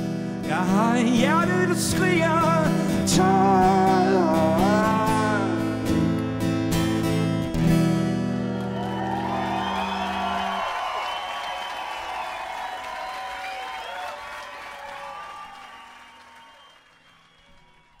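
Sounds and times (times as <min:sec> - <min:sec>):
acoustic guitar chord ringing: 0:00.0 - 0:10.6
crowd applauding and cheering: 0:07.7 - 0:18.0.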